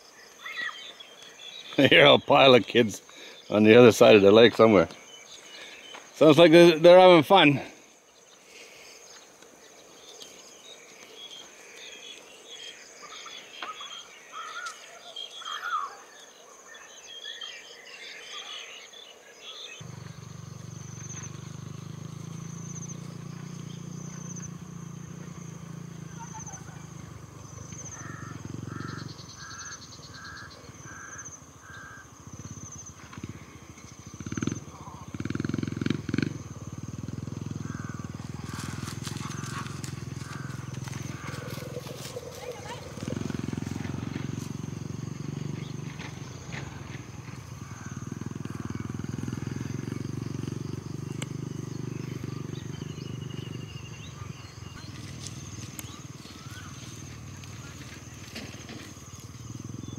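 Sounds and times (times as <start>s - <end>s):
high insect tone: 0.0s - 59.9s
distant children's voices: 41.5s - 43.2s.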